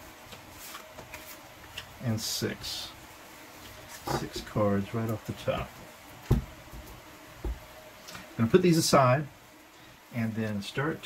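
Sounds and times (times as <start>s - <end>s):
cards being handled: 0.2s - 2.0s
soft short thump: 6.3s - 6.6s.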